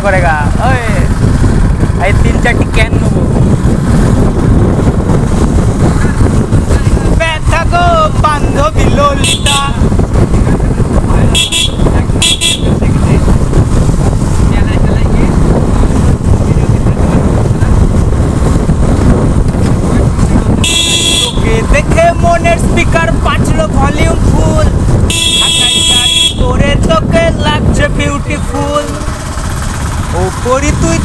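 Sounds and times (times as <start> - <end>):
motorcycle engine: 0.0 - 31.0
wind noise on microphone: 0.0 - 31.0
motorcycle horn toots: 9.1 - 9.8, 11.2 - 12.9, 20.6 - 21.5, 25.0 - 26.6.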